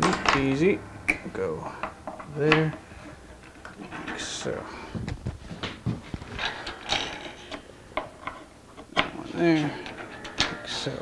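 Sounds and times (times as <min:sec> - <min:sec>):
wooden clicks and knocks: 0:05.0 - 0:09.2.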